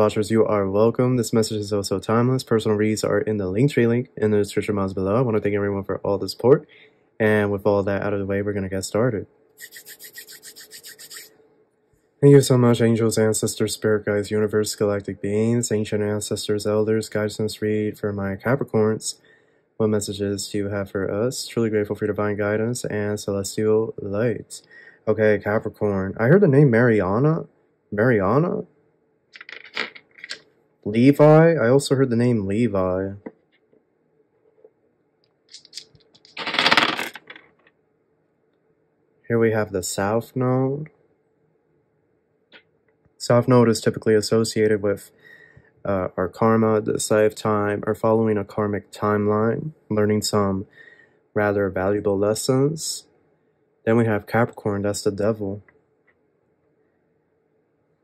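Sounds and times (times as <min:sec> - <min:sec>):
cards being shuffled: 0:29.4 - 0:30.4, 0:35.5 - 0:37.7
dice clattering on tabletop: 0:29.4 - 0:30.4, 0:35.6 - 0:37.7.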